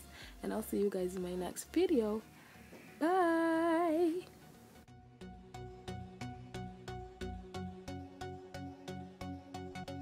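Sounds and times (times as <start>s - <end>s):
music with steady beat: 0.8s - 10.0s.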